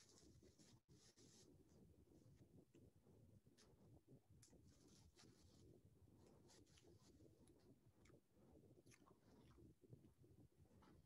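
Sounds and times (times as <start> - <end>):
faint scratchy rustling: 0.0 - 2.5, 3.5 - 7.7.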